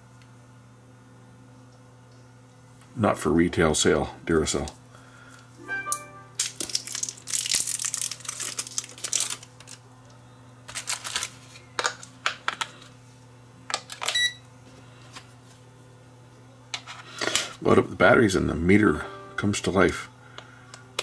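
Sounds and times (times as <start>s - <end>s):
plastic wrapping crinkling: 6.4s - 9.8s, 10.7s - 12.7s.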